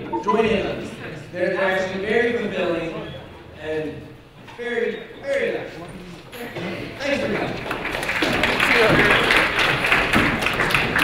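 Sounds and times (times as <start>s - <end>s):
audience applauding: 7.2s - 11.0s.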